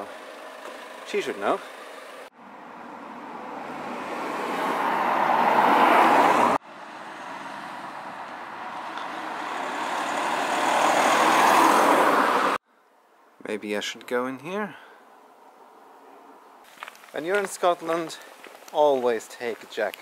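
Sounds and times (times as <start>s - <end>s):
car passing: 0.0s - 12.6s.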